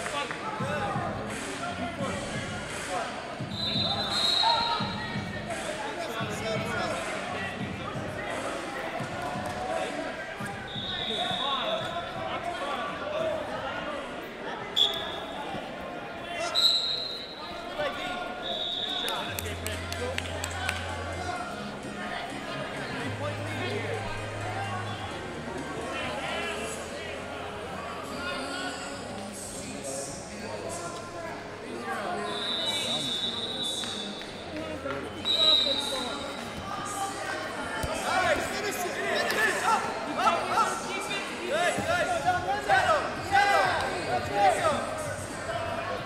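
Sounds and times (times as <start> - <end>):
crowd shouting and chatter: 0.0 - 46.0
referee whistle blasts: 3.5 - 5.0, 10.7 - 11.8, 14.8 - 15.4, 16.5 - 17.4, 18.4 - 19.3, 32.2 - 34.2, 35.2 - 36.4.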